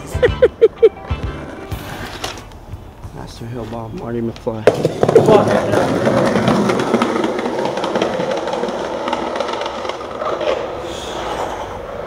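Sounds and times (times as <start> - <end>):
skateboard wheels rumbling on pavement: 1.2 - 12.0
wheels clicking over cracks: 1.8 - 12.0.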